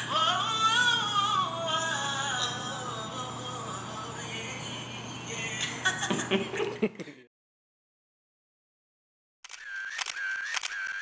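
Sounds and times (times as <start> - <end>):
camera shutter clicks: 9.4 - 11.0.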